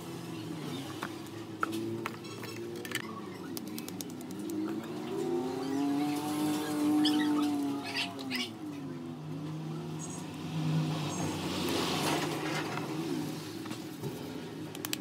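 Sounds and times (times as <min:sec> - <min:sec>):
passing motor vehicle engine: 0:00.0 - 0:14.8.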